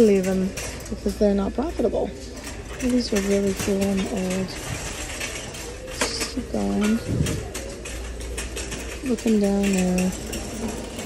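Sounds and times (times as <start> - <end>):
shopping cart rattling: 0.0 - 11.0.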